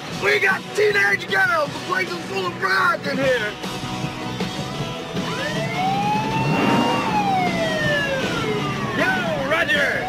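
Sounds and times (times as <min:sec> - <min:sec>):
police siren wailing: 0:05.2 - 0:10.0.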